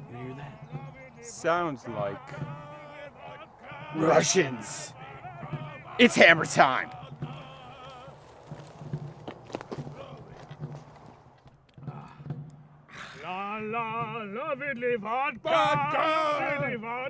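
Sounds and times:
man singing: 0.0 - 8.4, 9.8 - 10.5, 13.2 - 17.0.

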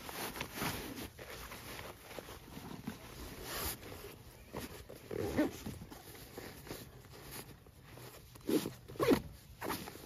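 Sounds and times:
cloth rustling: 0.0 - 10.0.

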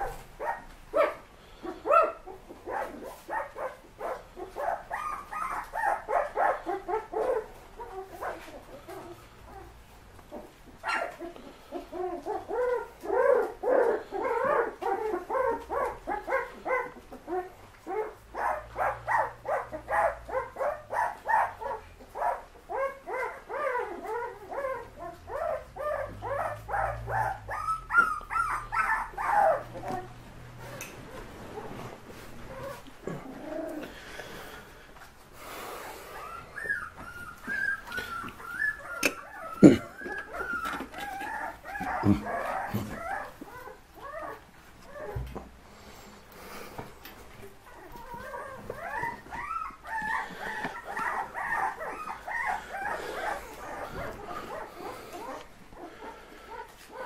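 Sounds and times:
puppies yipping and whimpering: 0.0 - 34.9, 35.5 - 57.0.

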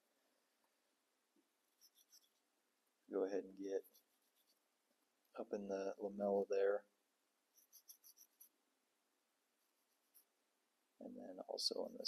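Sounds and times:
paintbrush bristles scratching: 1.7 - 2.5, 3.5 - 4.7, 7.5 - 8.5, 9.6 - 10.3, 11.5 - 12.0.

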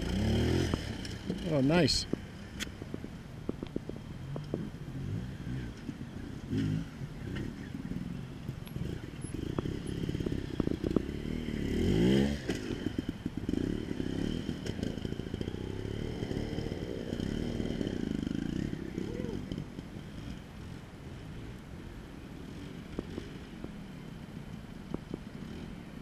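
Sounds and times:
motorcycle engine revving: 0.0 - 23.8.

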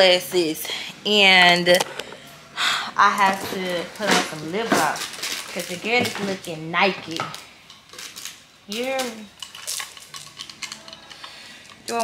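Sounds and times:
sunglasses clicking and rattling: 7.6 - 12.0.

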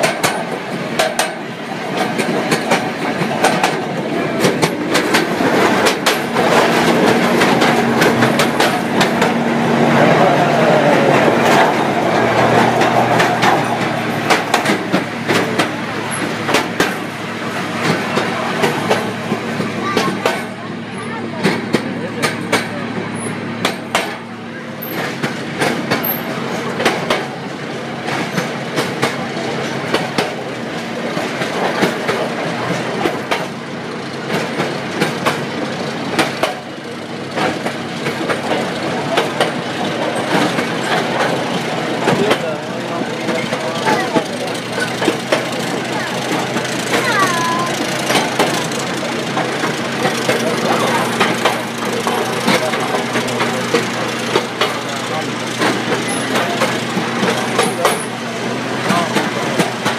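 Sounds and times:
steady engine hum: 0.0 - 59.9
train wheels clicking over rail joints: 0.0 - 59.9.

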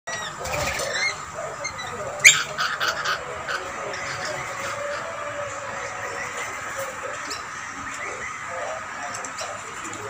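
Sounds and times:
lorikeets chirping and screeching: 0.1 - 9.9
chattering bird calls: 0.1 - 10.0.

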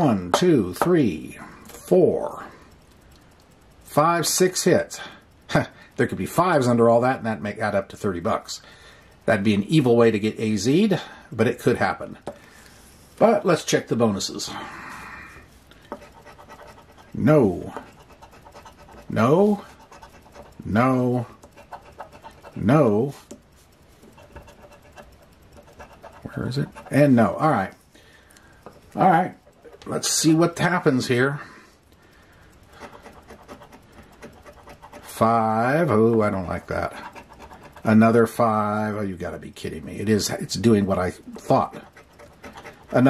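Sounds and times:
scraping lottery ticket coating: 15.8 - 27.8, 32.7 - 43.0.

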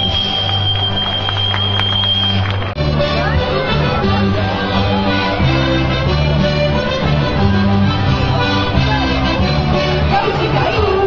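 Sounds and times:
folk band playing dance music: 0.0 - 11.0.

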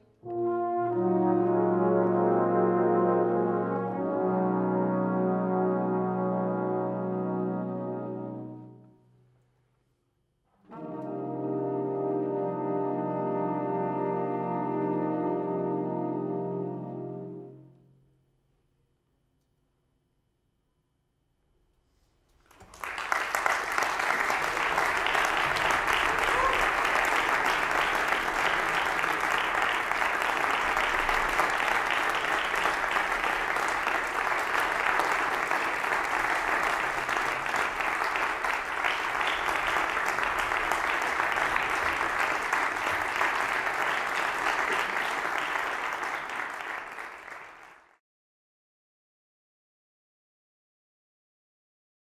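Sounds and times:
audience applauding: 22.5 - 48.0.

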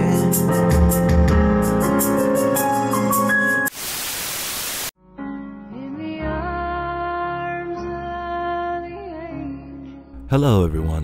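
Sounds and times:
music: 0.0 - 3.7, 5.0 - 11.0
burst of static hiss: 3.7 - 5.0.

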